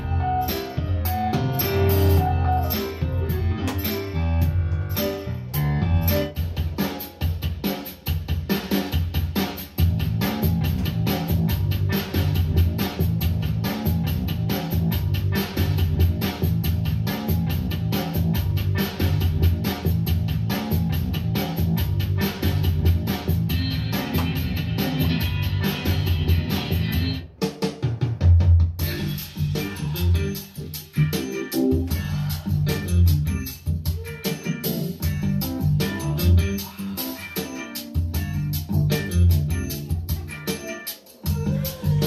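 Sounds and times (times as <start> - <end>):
song with steady drum beat: 0.0 - 42.0.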